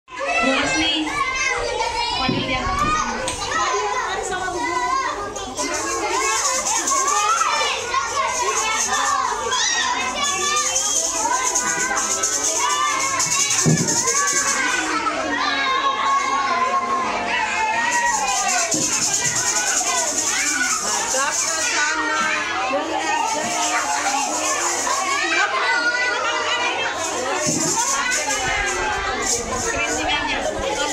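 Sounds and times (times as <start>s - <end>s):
children chattering and calling out: 0.1s - 30.9s.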